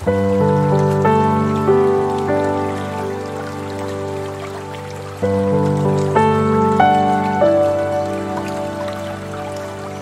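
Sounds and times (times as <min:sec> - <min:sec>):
soft piano music: 0:00.0 - 0:10.0.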